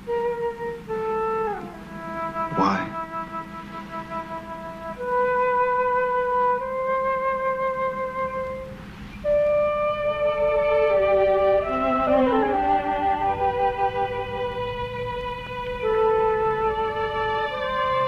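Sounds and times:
slow film score melody: 0.0 - 18.0.

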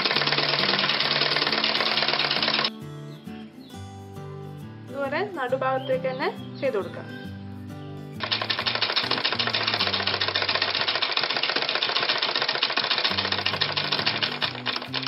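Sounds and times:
sewing machine stitching: 0.0 - 2.7, 8.2 - 15.0
background music: 0.0 - 10.9, 13.1 - 15.0.

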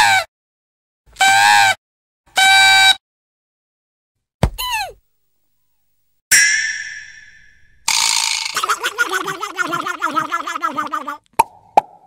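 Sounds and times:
pitched sound effects: 6.3 - 8.8.

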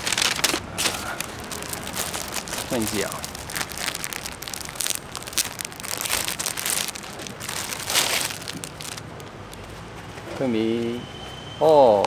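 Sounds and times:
plastic packet crinkling: 0.0 - 9.7.

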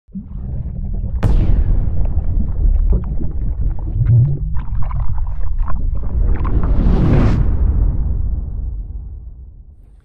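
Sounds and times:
water bubbling: 0.1 - 7.2
deep underwater rumble: 0.1 - 9.9
water splashing: 1.2 - 6.9.

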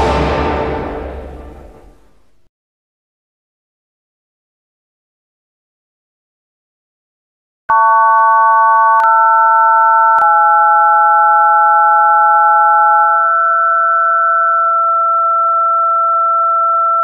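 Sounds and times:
electronic sine-wave test tones: 7.7 - 17.0.

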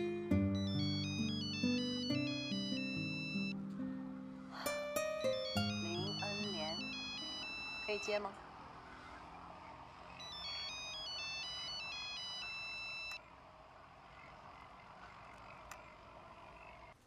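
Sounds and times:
mobile phone ringtone: 0.0 - 3.6, 5.0 - 8.3, 10.2 - 13.2.

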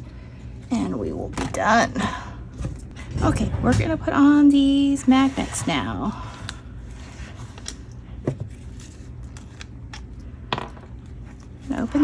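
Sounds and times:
low steady hum: 0.0 - 12.0
hands handling paper and supplies: 5.1 - 12.0.

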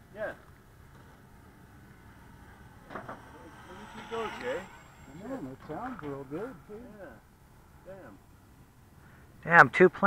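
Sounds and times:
faint low rumble: 0.0 - 9.5
man speaking: 3.3 - 7.2.

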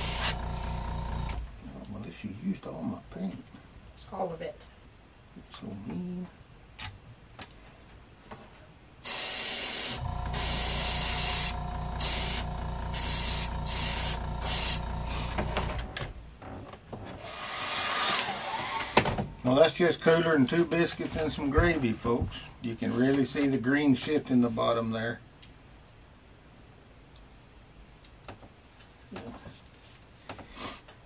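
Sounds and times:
airbrush spraying hissing bursts: 0.0 - 1.2, 9.0 - 15.4
low machine hum: 0.0 - 1.6, 10.0 - 16.0.

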